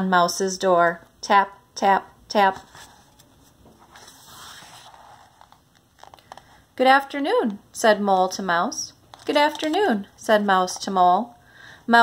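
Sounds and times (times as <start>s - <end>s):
paper page turning: 2.6s - 6.6s.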